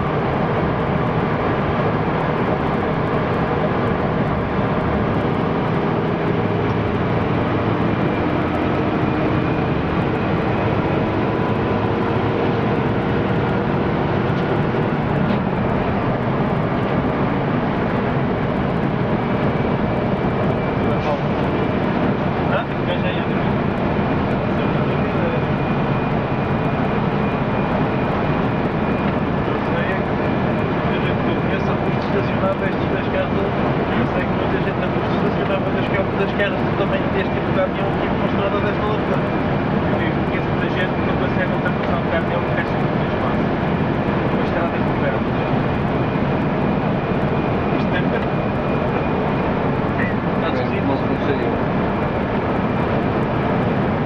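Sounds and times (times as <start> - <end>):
bus engine and road noise: 0.0 - 54.0.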